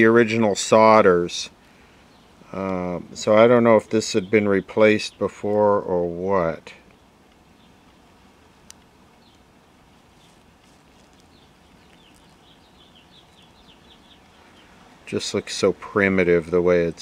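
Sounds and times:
room hiss: 0.0s - 17.0s
bird chirps: 6.7s - 8.2s, 9.2s - 17.0s.

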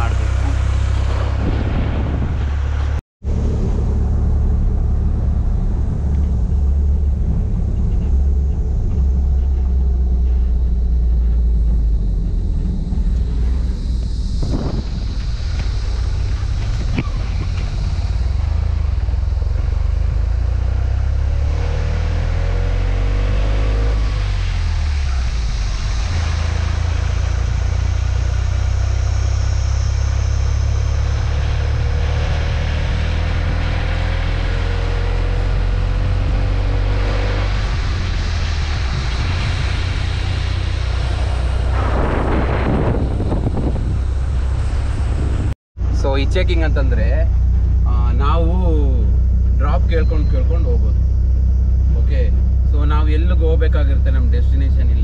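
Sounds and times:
pickup truck engine: 0.0s - 55.0s
wind rumbling on microphone: 0.0s - 55.0s.

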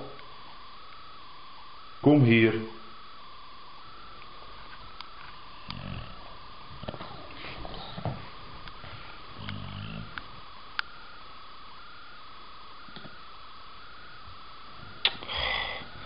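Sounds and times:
steady high whine: 0.0s - 16.0s
dog grunting: 5.7s - 8.2s, 9.3s - 10.2s, 15.1s - 16.0s.

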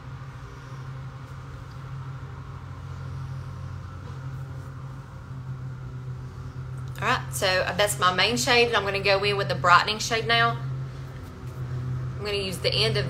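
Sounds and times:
low motor hum: 0.0s - 13.0s.

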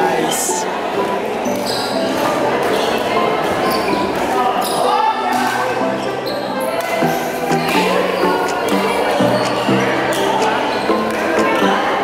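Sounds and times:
voices of players: 0.0s - 12.0s.

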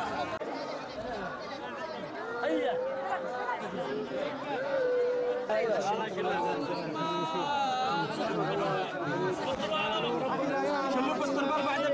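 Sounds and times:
crowd of men talking and calling: 0.0s - 11.9s.

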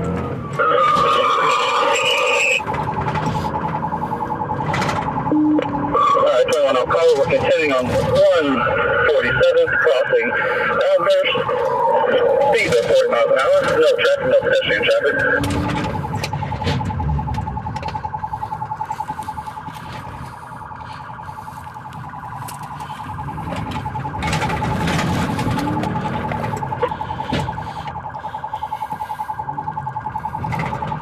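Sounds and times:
car engine and tyres rumbling: 0.0s - 31.0s
police siren pulsing: 0.0s - 31.0s.

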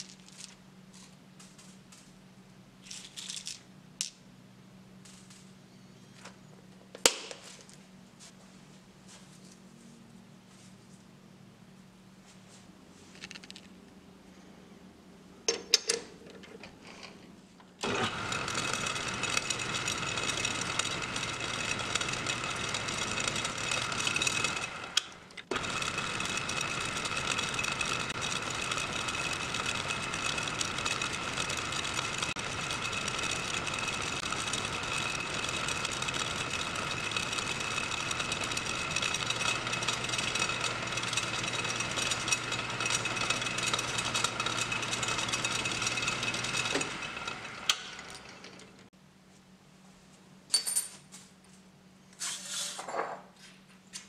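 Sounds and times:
metal lathe cutting metal: 17.8s - 48.8s.

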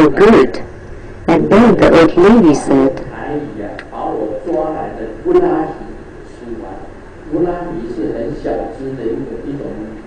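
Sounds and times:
man talking into microphone: 3.0s - 10.0s.

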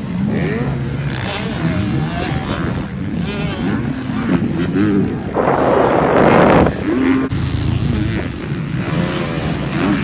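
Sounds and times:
dirt bike engines revving: 0.0s - 10.0s.

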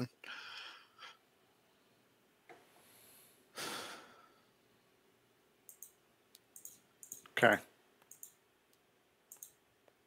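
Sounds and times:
person breathing or sighing: 3.5s - 4.4s.

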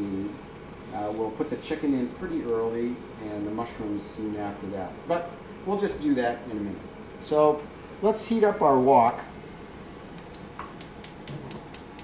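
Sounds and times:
gas igniter ticking: 10.3s - 12.0s.

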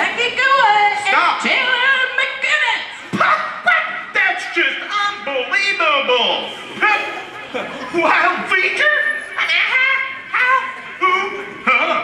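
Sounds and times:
high-pitched wordless vocal cries: 8.0s - 12.0s.

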